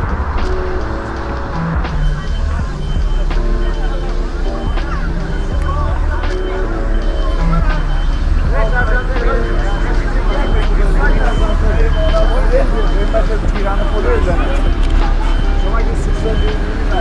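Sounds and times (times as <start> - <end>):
heavy vehicle engine running: 0.0 - 17.0
people talking: 0.0 - 17.0
reversing alarm beeping: 0.6 - 17.0.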